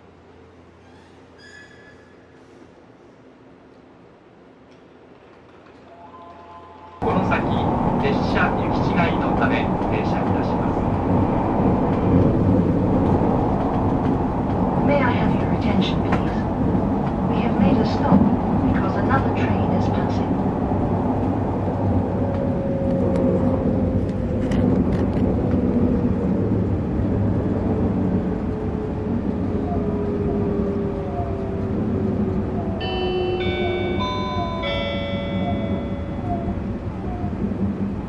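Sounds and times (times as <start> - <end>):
electric train rumble: 0.0 - 38.0
four-note chime: 32.8 - 36.3.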